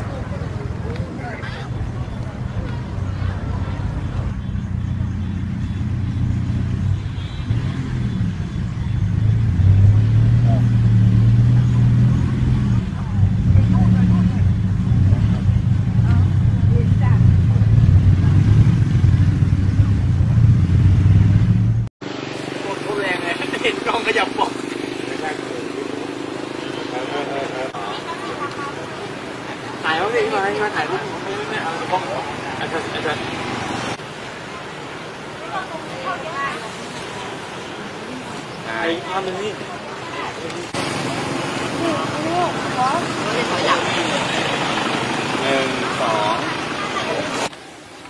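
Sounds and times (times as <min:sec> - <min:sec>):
faint voices: 0:00.0 - 0:06.5, 0:22.5 - 0:48.0
people talking outdoors: 0:00.0 - 0:20.8, 0:22.0 - 0:48.0.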